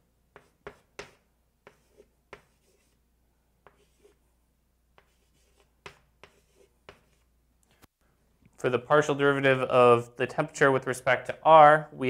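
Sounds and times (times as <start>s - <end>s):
chalk tapping on blackboard: 0.3s - 3.0s, 3.6s - 4.2s, 5.0s - 7.2s.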